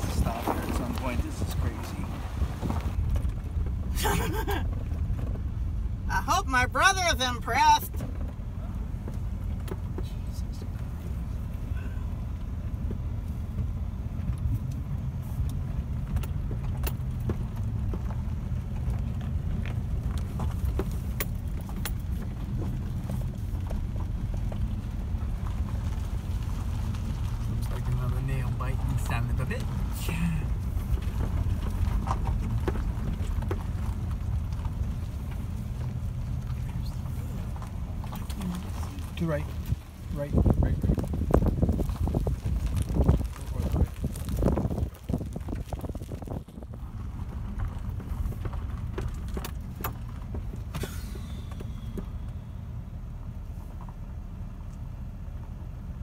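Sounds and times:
stones and cab rattling: 0.0 - 54.2
truck engine and tyres rumbling: 0.0 - 56.0.

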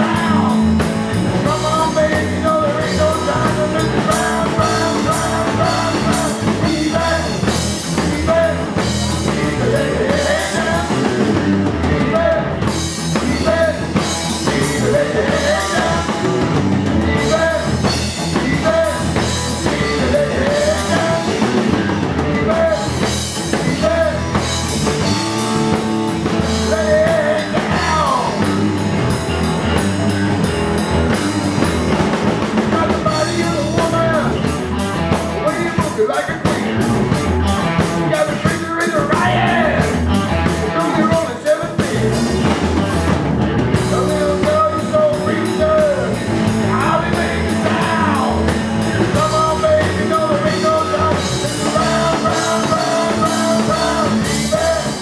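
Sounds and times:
rock band playing: 0.0 - 55.0.

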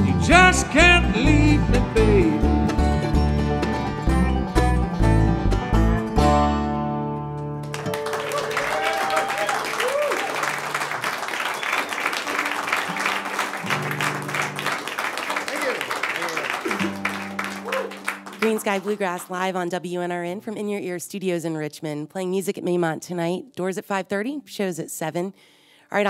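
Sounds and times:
acoustic bluegrass band playing: 0.0 - 8.2, 12.2 - 15.3, 16.6 - 20.7
audience applauding: 7.6 - 19.2
audience whooping: 7.8 - 19.0.

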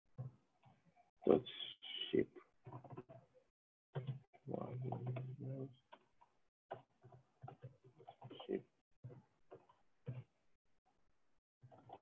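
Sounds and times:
keyboard typing: 4.0 - 8.6.

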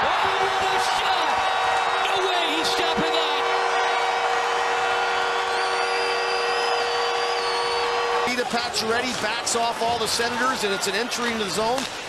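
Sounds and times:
crowd cheering: 0.0 - 12.0
goal horn blaring: 0.8 - 8.6.

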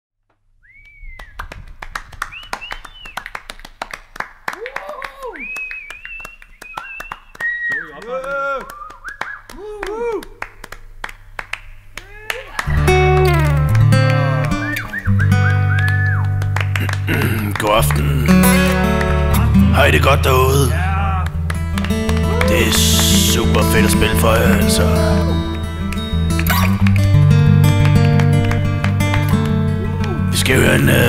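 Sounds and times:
audience clapping and cheering: 0.9 - 31.0
acoustic guitar chords: 12.6 - 31.0.

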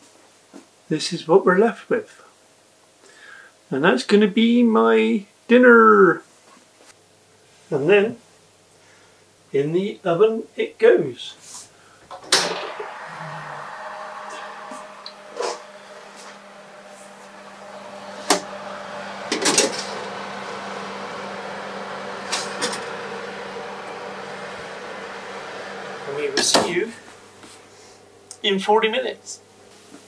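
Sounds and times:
oven fan humming: 12.1 - 28.6.

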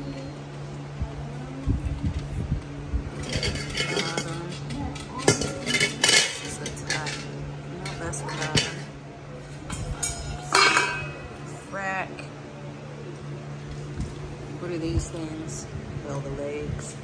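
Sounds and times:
metal grill parts clinking: 3.1 - 11.4.

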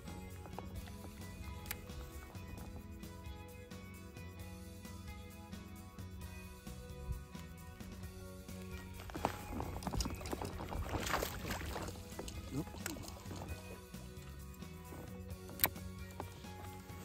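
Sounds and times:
background music: 0.0 - 17.0
fish splashing in water: 10.1 - 13.3.

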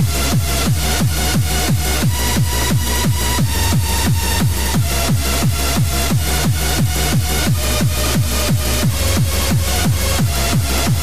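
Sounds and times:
hard kick drum: 0.0 - 11.0
hardcore rave music: 0.0 - 11.0.

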